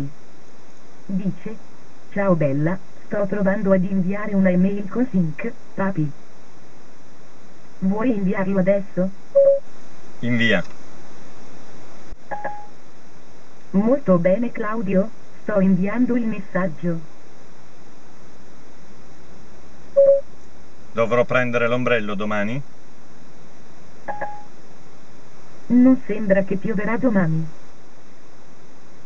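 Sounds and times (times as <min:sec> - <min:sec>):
steady line hiss: 0:00.0 - 0:29.0
short electronic beep: 0:20.0 - 0:20.2, 0:24.1 - 0:24.5.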